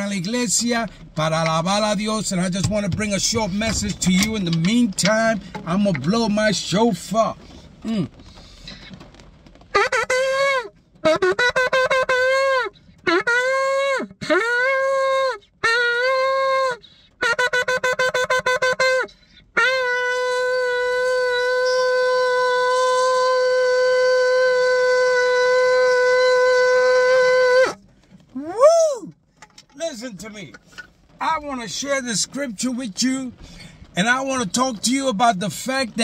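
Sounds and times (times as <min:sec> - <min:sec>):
shofar blasts: 0:09.7 - 0:27.8.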